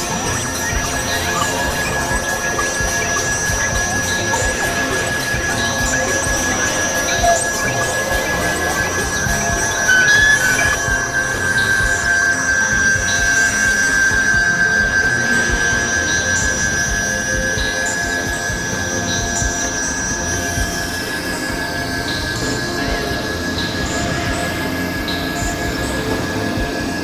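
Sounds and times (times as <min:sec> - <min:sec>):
dense noisy low drone: 0:00.0 - 0:27.0
faint pings: 0:00.0 - 0:27.0
gliding synthesizer tone: 0:00.0 - 0:27.0
steady high synthesizer tone: 0:00.0 - 0:27.0.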